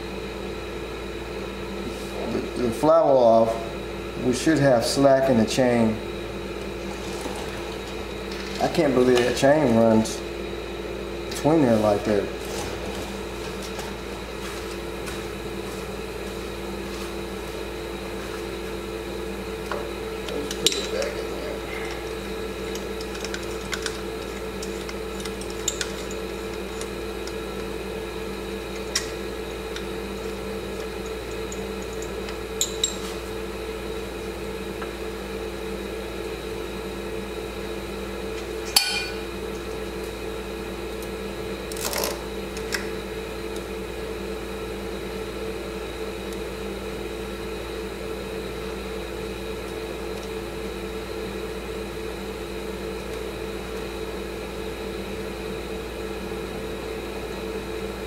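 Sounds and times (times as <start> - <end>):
steady mechanical hum: 0.0 - 58.0.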